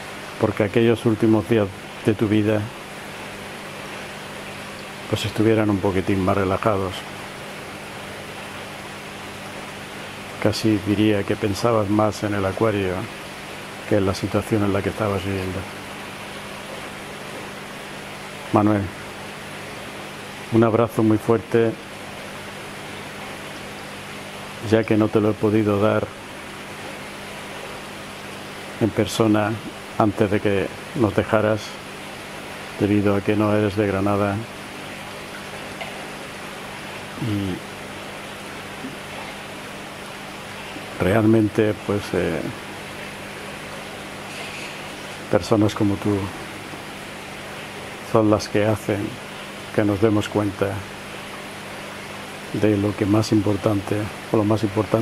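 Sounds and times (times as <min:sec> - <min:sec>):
water pumps hissing and humming: 0:00.0 - 0:55.0.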